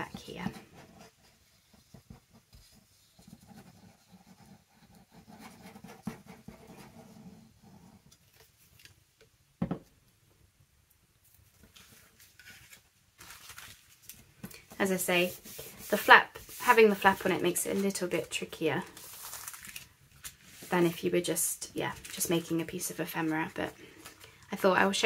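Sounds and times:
paper rustling: 11.5s - 24.9s.

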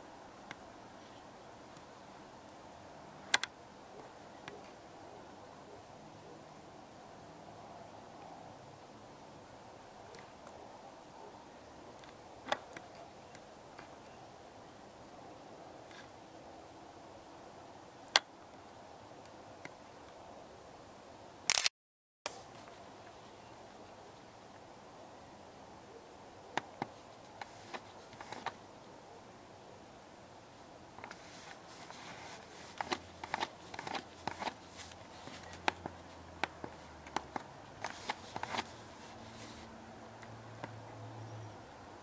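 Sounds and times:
faint steady hiss: 0.0s - 21.5s, 22.3s - 42.0s
sharp clicks: 21.5s - 21.7s.

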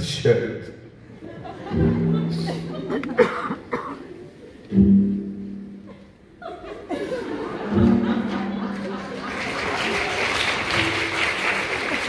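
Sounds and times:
person coughing: 3.2s - 4.1s.

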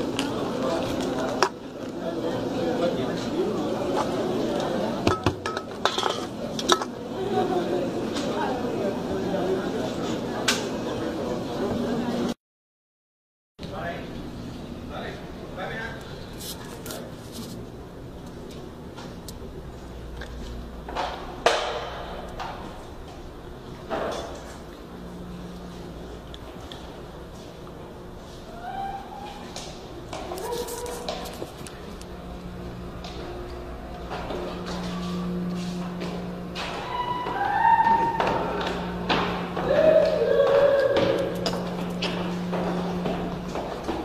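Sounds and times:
voices in a busy room: 0.0s - 12.4s, 13.6s - 44.0s.

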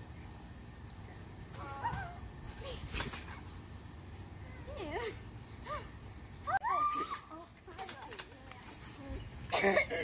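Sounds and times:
girl squealing: 6.5s - 7.3s
girls' loud vocal outburst: 6.5s - 7.5s.

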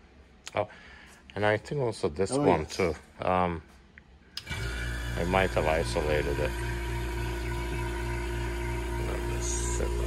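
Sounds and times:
vacuum pump humming: 4.4s - 10.0s.

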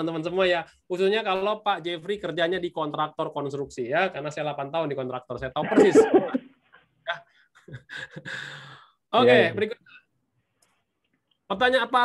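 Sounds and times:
man murmuring: 5.6s - 6.5s, 9.2s - 9.6s.

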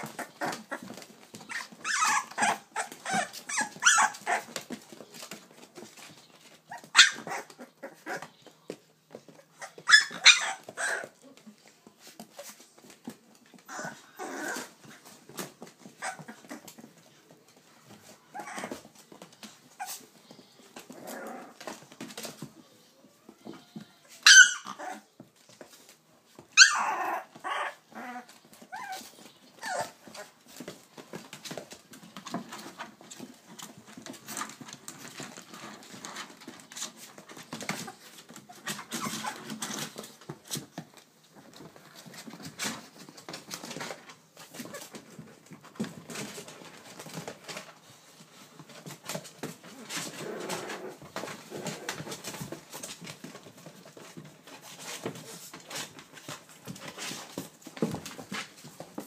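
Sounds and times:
puppy yelping: 0.0s - 4.6s, 6.7s - 8.3s, 9.6s - 11.2s, 16.0s - 16.7s, 18.3s - 18.8s, 24.2s - 25.1s, 26.6s - 30.3s
puppies growling and whimpering: 0.0s - 8.5s, 9.2s - 11.6s, 12.3s - 17.1s, 17.9s - 22.4s, 23.4s - 25.2s, 26.4s - 47.8s, 48.6s - 58.6s
light scuffling: 0.0s - 59.0s.

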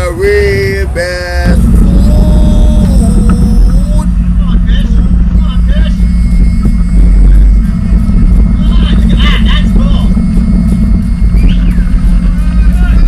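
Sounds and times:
engine rumble: 0.0s - 13.0s.

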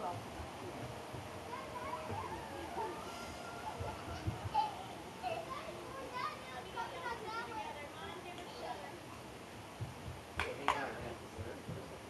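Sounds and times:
children's voices chattering: 1.2s - 9.4s.

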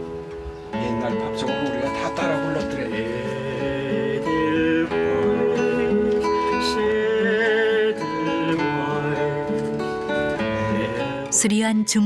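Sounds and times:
fingerpicked classical guitar: 0.0s - 12.0s
man singing with vibrato: 0.8s - 11.4s.

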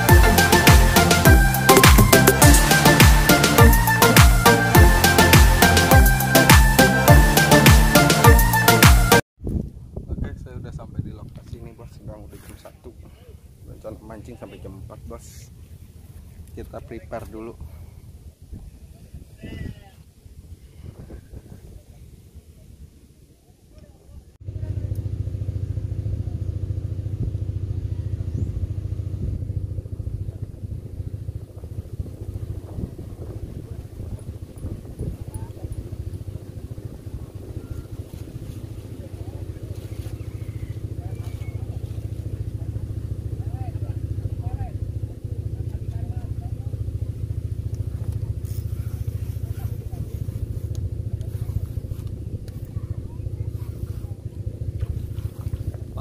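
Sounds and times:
low engine drone: 0.0s - 9.2s, 24.4s - 56.0s
faint voices: 33.4s - 56.0s.

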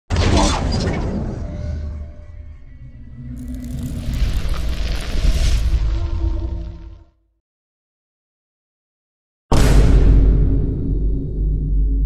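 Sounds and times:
low rumble: 1.5s - 7.2s
rush of noise: 3.2s - 7.1s.

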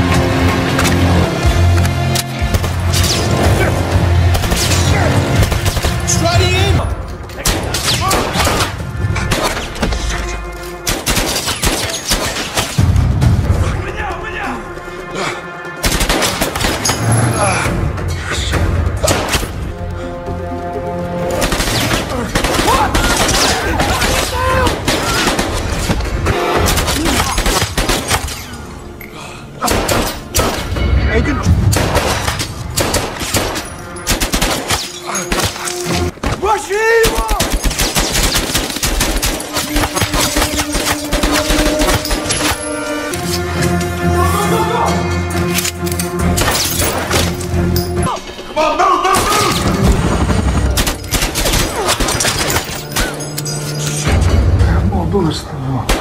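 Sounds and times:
film music score: 0.0s - 56.0s
gunfire: 10.8s - 12.8s, 15.8s - 17.0s, 21.3s - 28.3s, 29.6s - 30.7s, 31.6s - 35.7s, 37.0s - 42.6s, 49.2s - 52.8s.

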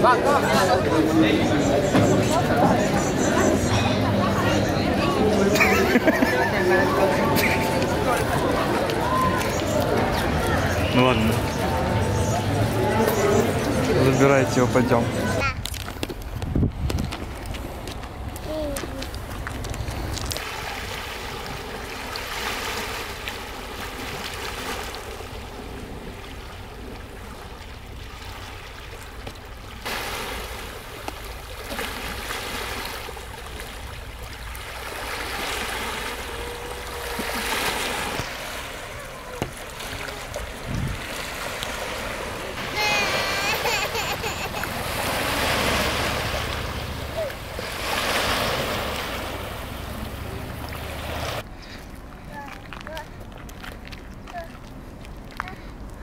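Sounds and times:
small waves washing onto rocks: 5.2s - 56.0s.

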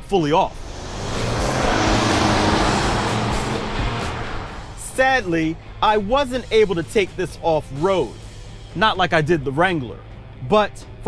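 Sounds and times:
background music: 0.0s - 11.0s
vehicle passing by: 0.4s - 5.8s.

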